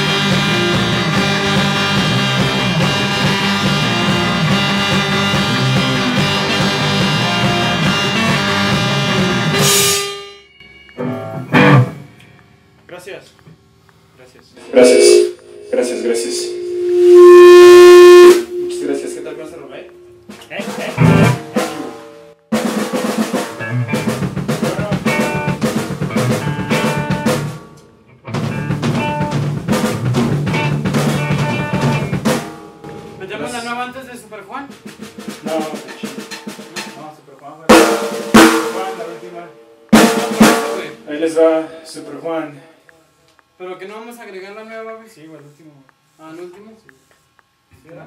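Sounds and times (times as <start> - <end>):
voices: 14.4 - 21.0
pitched instrument notes: 14.6 - 21.7
snare rolls and drum fills: 22.6 - 27.5, 40.0 - 41.0.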